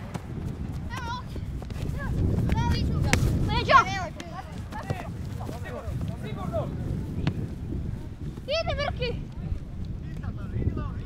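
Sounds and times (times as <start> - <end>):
wind on microphone: 0.0 - 11.0
child shouting: 2.0 - 5.0.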